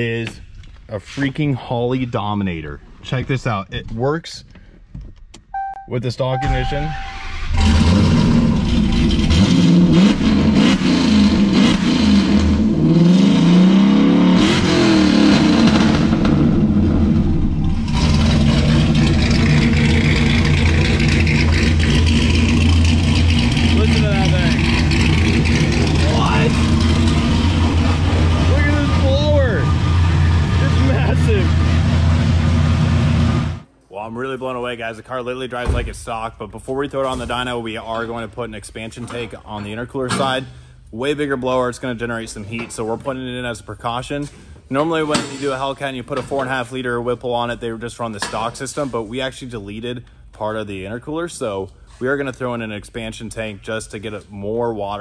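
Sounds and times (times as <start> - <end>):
car engine revving: 6.4 - 33.6
loud engine idle: 17.9 - 33.2.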